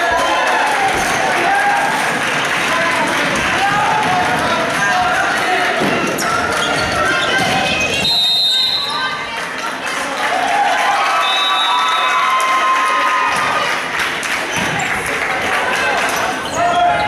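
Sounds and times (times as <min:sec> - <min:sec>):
voices and shouts in a hall: 0:00.0 - 0:17.0
sneakers squeaking on hardwood floor: 0:05.9 - 0:09.1, 0:16.1 - 0:17.0.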